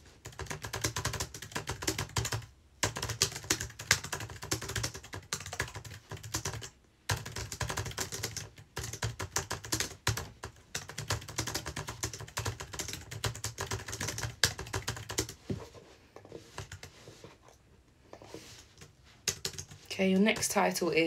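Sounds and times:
fast typing on keyboard: 0.2s - 15.4s, 18.8s - 20.7s.

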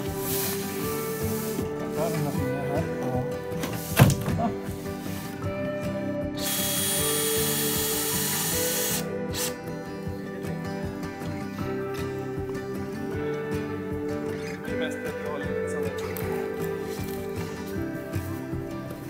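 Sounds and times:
background music: 0.0s - 19.0s
cordless drill running: 6.4s - 9.6s.

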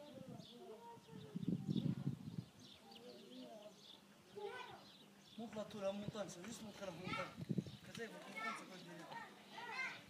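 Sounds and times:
distant children calling: 0.0s - 5.6s, 8.2s - 10.0s.

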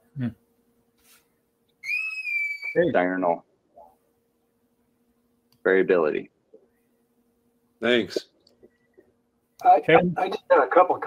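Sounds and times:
high whistle-like tone: 1.8s - 2.9s
man speaking: 7.8s - 8.2s, 9.6s - 11.0s.

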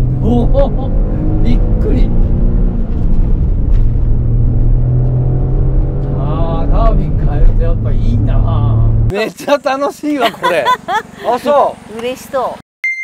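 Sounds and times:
car engine pulling under load: 0.0s - 9.1s.

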